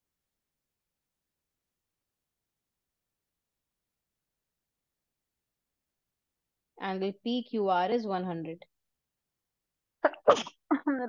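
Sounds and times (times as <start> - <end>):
woman sneezing: 10.1 - 10.6.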